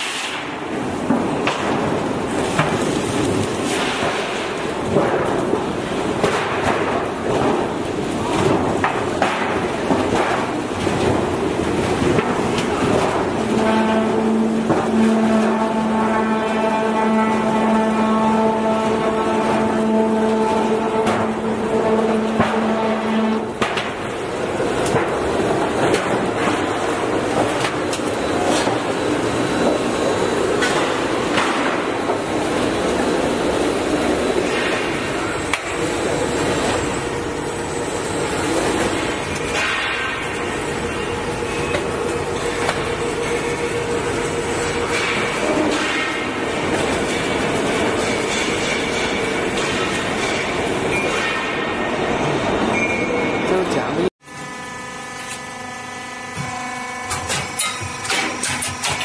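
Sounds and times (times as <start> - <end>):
machine hum: 0.4 - 53.0
roll forming machine clattering: 0.5 - 52.8, 57.0 - 59.0.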